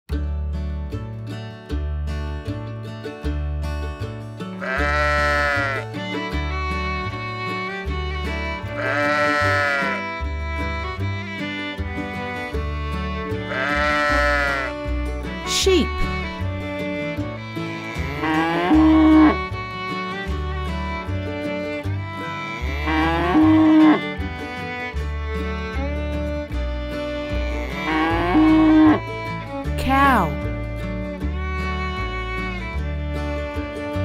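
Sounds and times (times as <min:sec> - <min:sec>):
background music with bass line: 0:00.1 - 0:34.0
cow mooing: 0:04.6 - 0:05.8, 0:08.8 - 0:10.0, 0:13.5 - 0:14.7, 0:18.1 - 0:19.4, 0:22.6 - 0:24.0, 0:27.6 - 0:29.0
sheep bleating: 0:04.6 - 0:05.9, 0:08.8 - 0:10.0, 0:13.5 - 0:14.8, 0:17.9 - 0:19.4, 0:22.6 - 0:24.0, 0:27.5 - 0:29.0.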